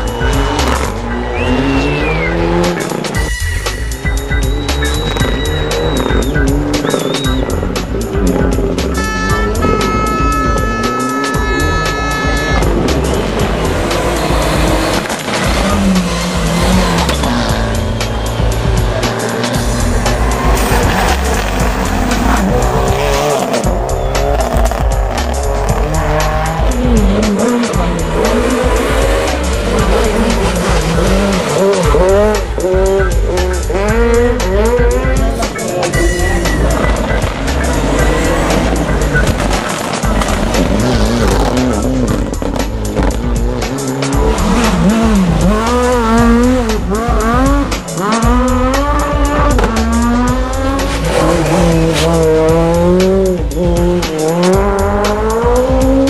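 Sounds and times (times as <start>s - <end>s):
tyre squeal: 0.0s - 7.6s
rally car engines revving: 0.0s - 56.0s.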